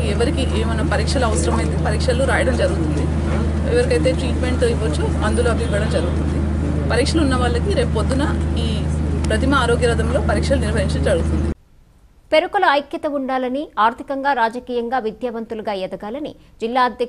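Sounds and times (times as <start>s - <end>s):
woman speaking: 0.0s - 6.3s, 6.9s - 11.6s, 12.3s - 17.0s
steady low hum: 0.0s - 12.4s.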